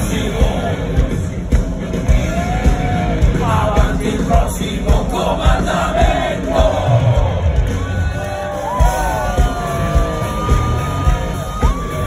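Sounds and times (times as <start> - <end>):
live rock band: 0.0 - 12.0
steady drum beat: 0.0 - 12.0.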